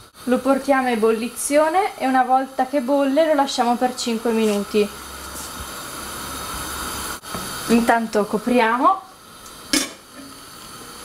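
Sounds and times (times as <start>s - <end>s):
steady hiss: 0.0s - 11.0s
pot lid clinking on pot: 9.7s - 10.4s.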